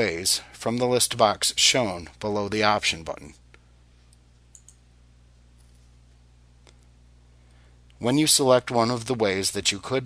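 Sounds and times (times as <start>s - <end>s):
low steady hum: 0.0s - 10.0s
computer mouse clicks: 4.5s - 4.8s.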